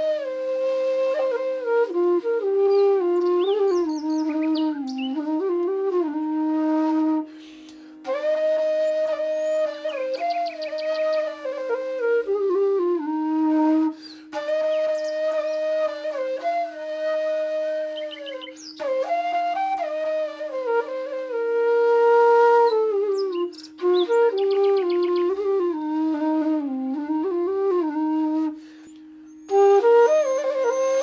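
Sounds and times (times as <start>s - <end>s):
slow flute melody: 0.0s - 31.0s.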